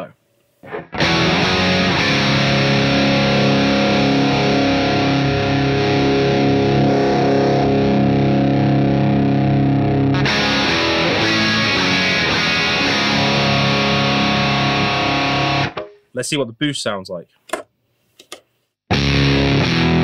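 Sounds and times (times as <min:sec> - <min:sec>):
overdriven electric guitar chords: 0:00.6 - 0:16.0, 0:18.9 - 0:20.0.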